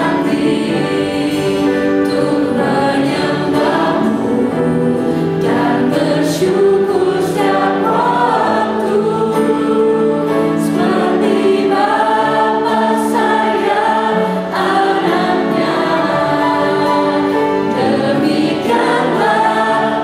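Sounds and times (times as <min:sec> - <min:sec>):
group singing a hymn: 0:00.0 - 0:20.0
piano accompaniment: 0:00.0 - 0:20.0.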